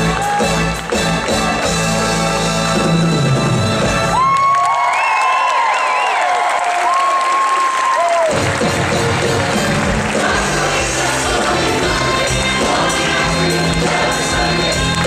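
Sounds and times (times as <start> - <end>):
band playing with bass and beat: 0.0 - 4.3, 8.3 - 15.0
audience cheering and applause: 0.0 - 15.0.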